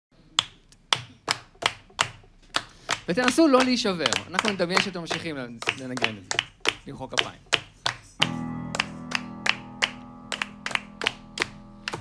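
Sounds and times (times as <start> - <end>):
person clapping a beat: 0.3 - 12.0.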